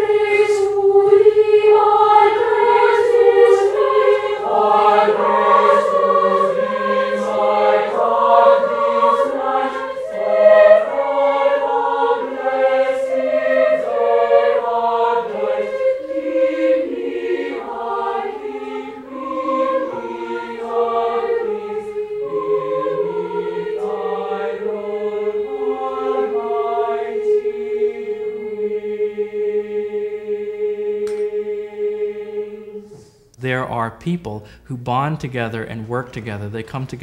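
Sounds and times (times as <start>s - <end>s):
boys' choir singing: 0.0s - 33.2s.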